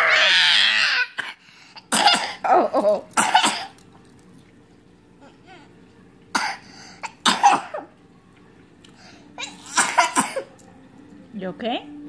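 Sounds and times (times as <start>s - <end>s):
young child coughing: 1.2s - 2.6s, 3.2s - 3.8s, 6.3s - 7.9s, 9.4s - 10.5s.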